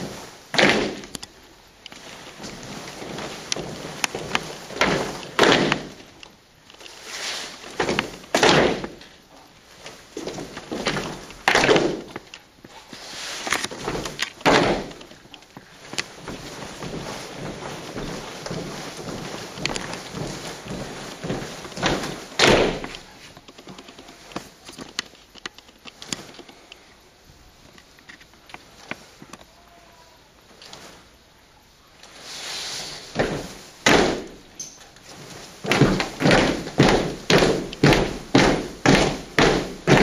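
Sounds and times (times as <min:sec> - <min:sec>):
boots stamping in unison: 0:00.0 - 0:01.2, 0:02.0 - 0:06.2, 0:07.6 - 0:09.1, 0:09.7 - 0:12.7, 0:13.6 - 0:23.1, 0:33.1 - 0:34.5, 0:35.2 - 0:40.0
rustle of movement: 0:00.0 - 0:40.0.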